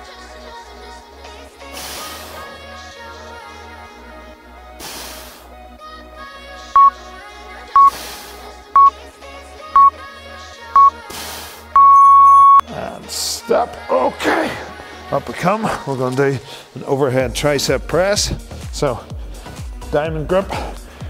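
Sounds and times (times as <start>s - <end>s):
timer beeps: 6.8s - 7.0s, 7.8s - 8.0s, 10.8s - 11.0s, 11.8s - 12.7s.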